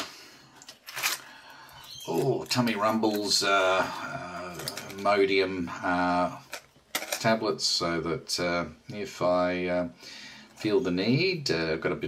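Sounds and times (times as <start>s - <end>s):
blister pack rustling: 0.6s - 3.4s.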